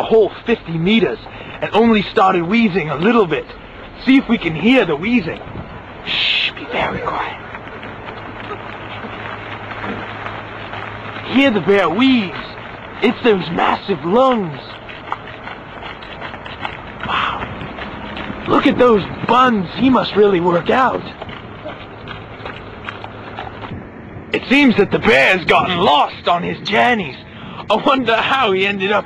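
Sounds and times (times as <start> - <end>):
jogging footsteps: 0.0 - 26.0
vehicle engine running: 0.0 - 29.0.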